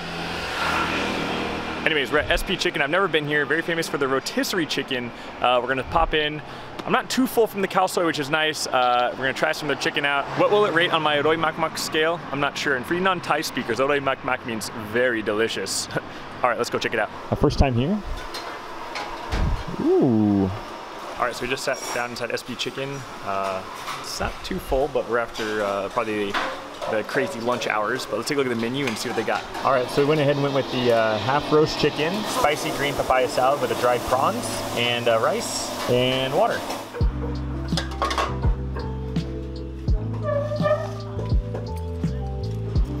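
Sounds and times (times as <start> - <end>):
motor scooter passing: 0.0 - 2.2
man saying ooh: 19.6 - 20.6.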